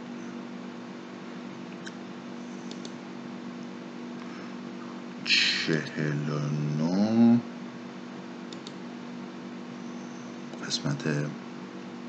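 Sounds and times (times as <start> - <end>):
steady low hum: 0.0 - 12.0
computer mouse clicks: 2.7 - 3.0, 8.5 - 8.8.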